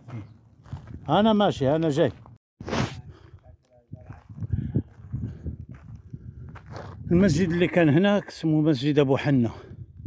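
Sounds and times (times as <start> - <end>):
footsteps on dirt path: 0.0 - 2.4, 3.1 - 7.9.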